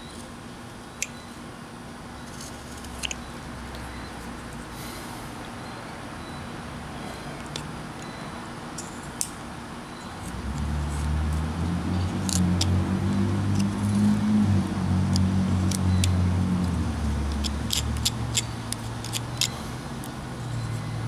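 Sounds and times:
vehicle engine hum: 0.0 - 21.0.

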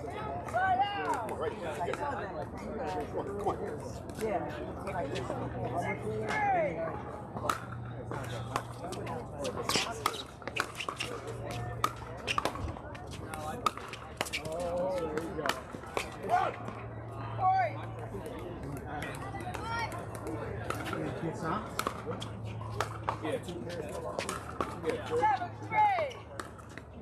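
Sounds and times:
people talking: 0.0 - 26.5.

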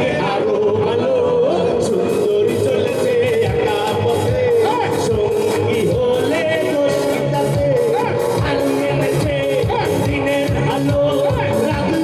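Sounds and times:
band with drums and keyboard: 0.0 - 12.0
man singing into a microphone: 0.0 - 12.0.

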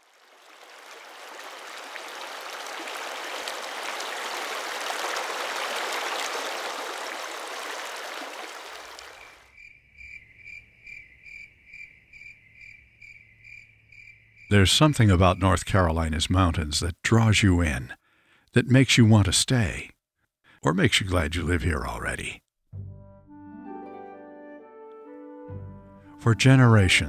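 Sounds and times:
stream rushing over boulders: 0.0 - 9.4
crickets chirping: 7.6 - 16.3.

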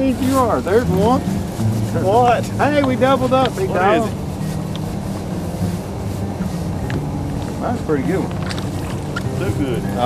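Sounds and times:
boat motor humming: 0.0 - 10.0.

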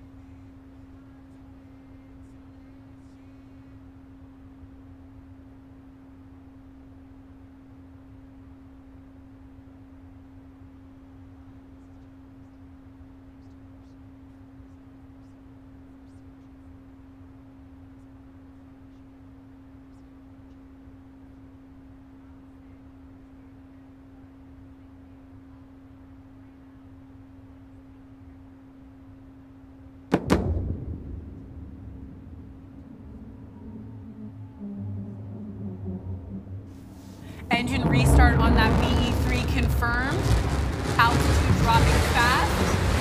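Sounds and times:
steady low hum: 0.0 - 43.0
rocket engine crack and rumble: 30.1 - 43.0.

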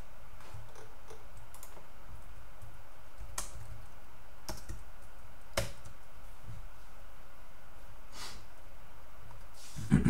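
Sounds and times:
computer keyboard typing: 0.6 - 6.1.

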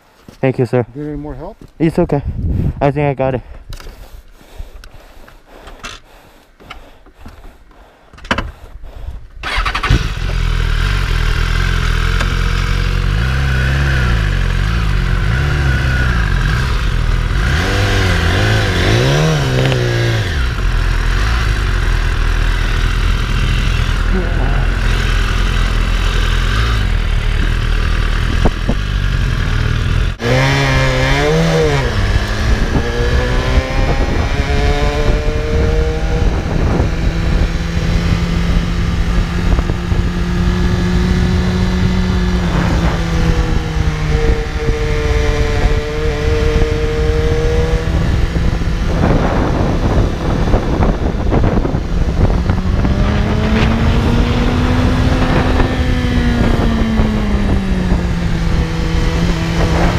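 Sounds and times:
motorcycle engine revving: 9.4 - 59.9.

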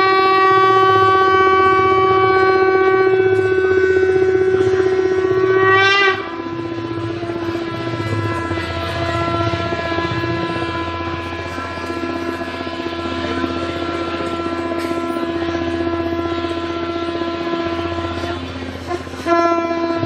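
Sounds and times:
conch shell blast: 0.0 - 20.0.

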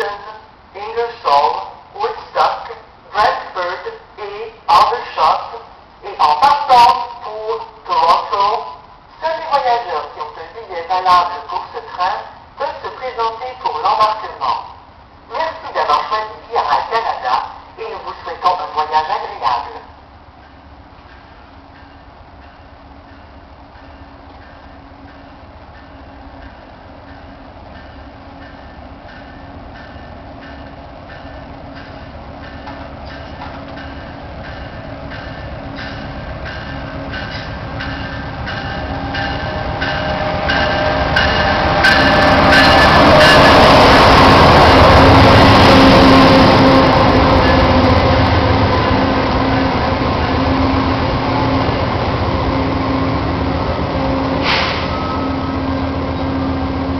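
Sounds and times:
passenger train passing: 0.0 - 56.9.

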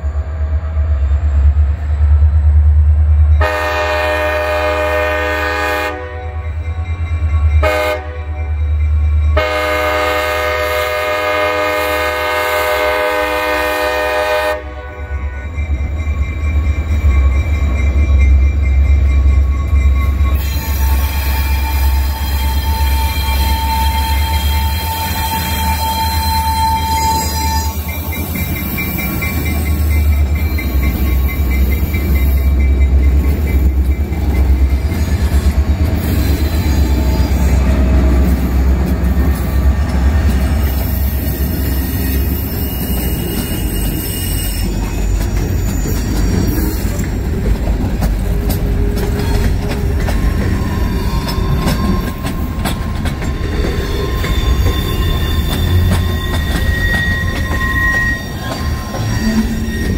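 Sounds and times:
locomotive horn blasts: 3.4 - 6.6, 7.6 - 8.6, 9.4 - 15.6, 20.6 - 27.8.

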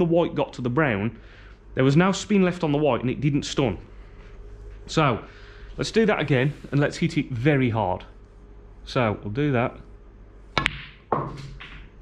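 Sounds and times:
cue striking ball: 10.6 - 12.0
snooker balls clicking: 10.6 - 12.0.

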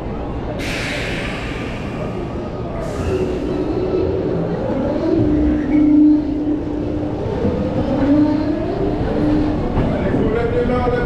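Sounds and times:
roller coaster car rumbling: 0.0 - 11.0.

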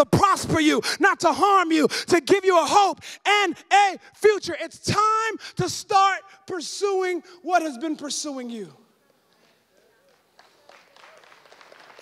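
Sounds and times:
scattered clapping: 9.2 - 12.0.

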